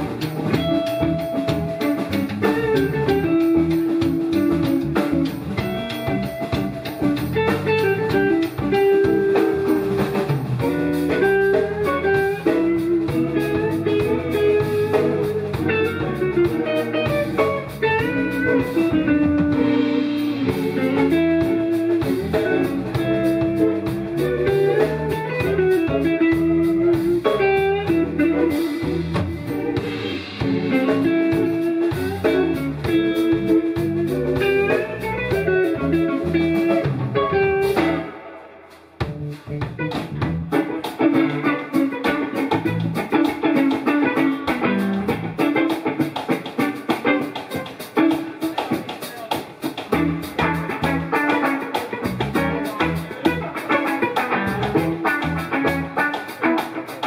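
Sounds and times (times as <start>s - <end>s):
electric bass: 0.0s - 47.9s, 49.8s - 57.0s
drum kit: 0.0s - 57.0s
lead electric guitar melody: 0.0s - 57.0s.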